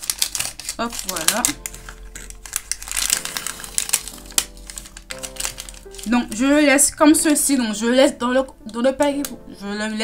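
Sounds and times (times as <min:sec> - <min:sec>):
paper wrapper crinkling: 0:00.0 - 0:07.4
faint background music: 0:00.0 - 0:10.0.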